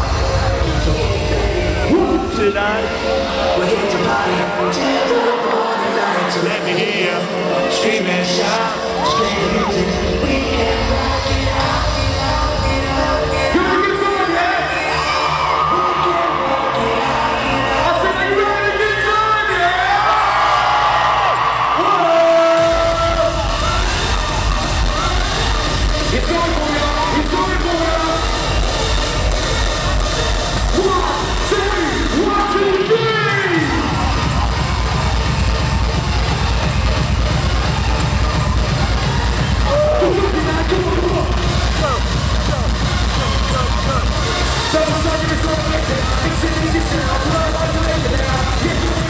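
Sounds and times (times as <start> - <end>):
live dance-pop music: 0.0 - 49.0.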